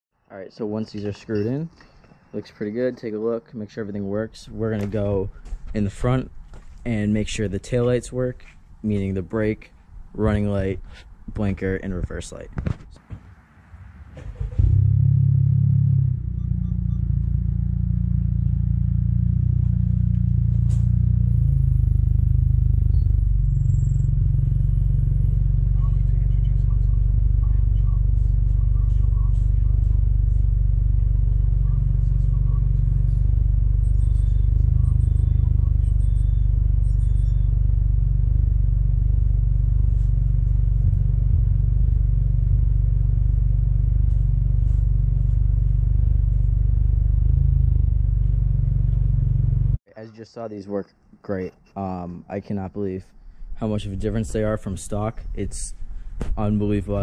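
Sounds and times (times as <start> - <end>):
car engine starting and idling: 13.6 - 49.8.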